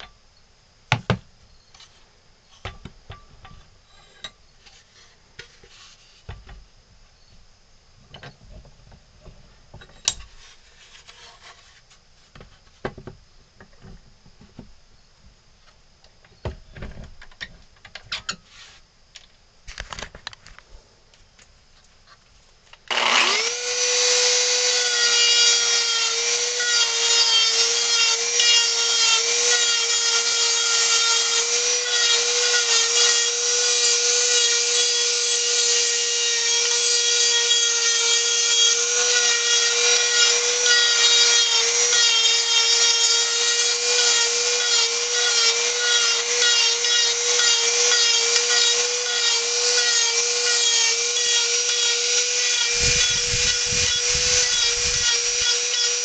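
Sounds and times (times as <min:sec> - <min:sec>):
rotary tool bit carving wood: 0:22.9 - 0:56.0
rotary tool whining: 0:22.9 - 0:56.0.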